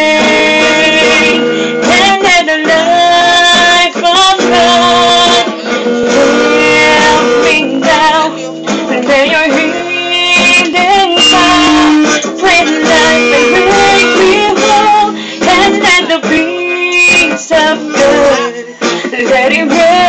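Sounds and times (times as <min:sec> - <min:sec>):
acoustic guitar strumming: 0:00.0 - 0:20.0
woman singing worship song: 0:00.0 - 0:20.0.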